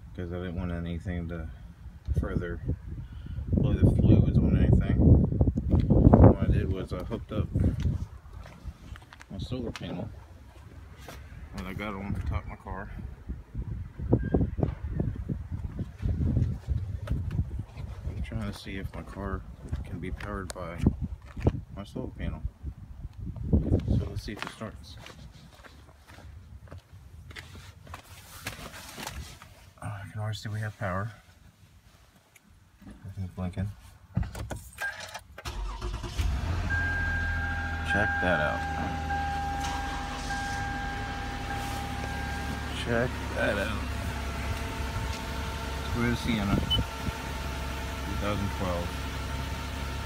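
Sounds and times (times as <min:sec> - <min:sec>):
car engine idling: 0:35.5 - 0:50.0
steady high whine: 0:36.8 - 0:50.0.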